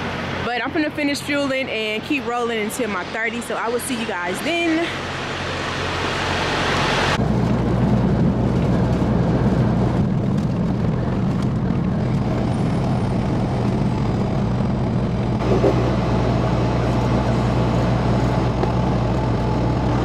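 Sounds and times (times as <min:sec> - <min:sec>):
diesel truck engine drone: 0:00.0 - 0:20.0
road noise inside cab: 0:00.0 - 0:20.0.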